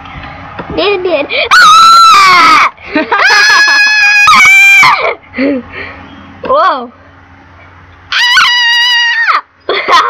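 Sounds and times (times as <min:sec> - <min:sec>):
person squealing: 0:01.5 - 0:05.2.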